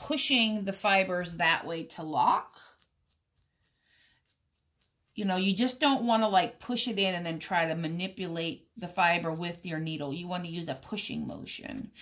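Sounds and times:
felting needle scratching wool: 0:00.0 - 0:12.0.

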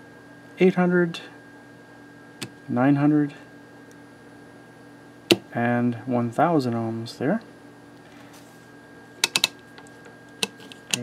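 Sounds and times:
rotary switch clicking: 0:09.2 - 0:09.6.

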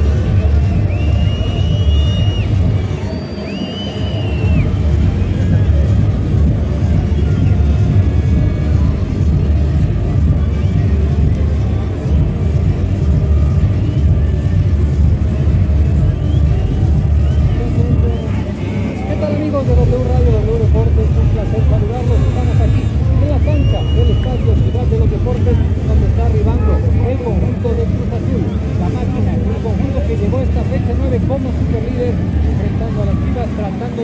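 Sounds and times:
low rumble: 0:00.0 - 0:33.9
bass-heavy music: 0:00.0 - 0:34.0
crowd voices: 0:00.0 - 0:34.0.

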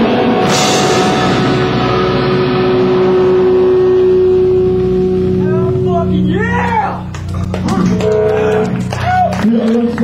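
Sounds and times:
distorted electric guitars: 0:00.0 - 0:10.0.

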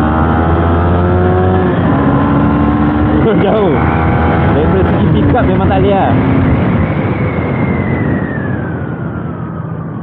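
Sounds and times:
motorcycle engine while riding: 0:00.0 - 0:10.0
wind noise on microphone: 0:00.0 - 0:10.0.

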